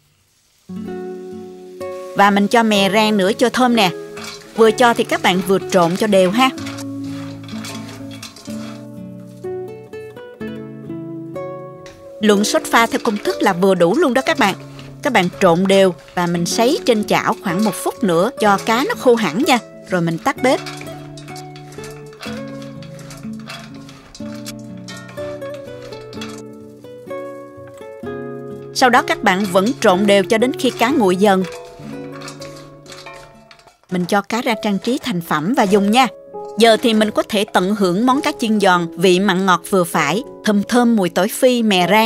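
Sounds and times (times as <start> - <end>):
fish tossed with spatulas in wok: 0.4 - 10.0, 11.4 - 40.0
acoustic guitar music: 0.7 - 42.0.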